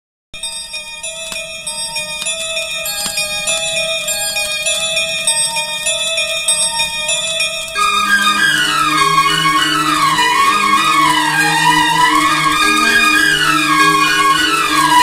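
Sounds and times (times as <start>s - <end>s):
film song intro from vinyl: 0.9s - 15.0s.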